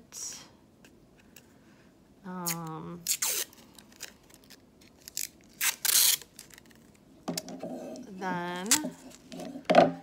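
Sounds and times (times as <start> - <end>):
tape peeling off roll: 2.4 - 7.0.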